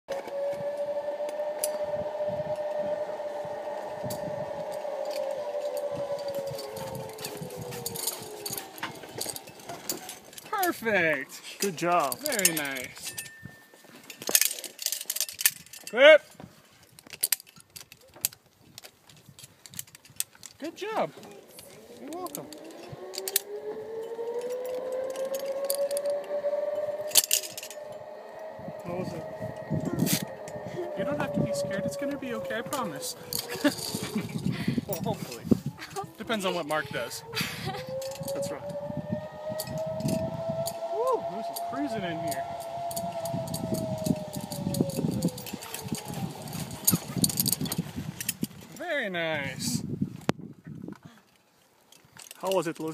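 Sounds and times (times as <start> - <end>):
zipline trolley whine: 0.1 - 15.8, 20.5 - 48.8
metal carabiners clinking: 4.7 - 10.8, 11.4 - 28.2, 29.6 - 37.2, 37.8 - 38.6, 42.6 - 48.9, 51.2 - 52.9.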